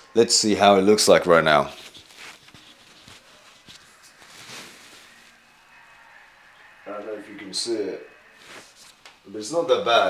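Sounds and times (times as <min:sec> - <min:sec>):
faint soft rustle: 0:01.2 - 0:06.4, 0:08.3 - 0:09.1.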